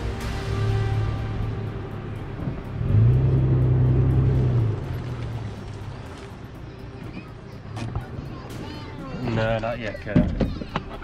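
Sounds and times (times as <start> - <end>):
suv engine revving: 0.0 - 8.2.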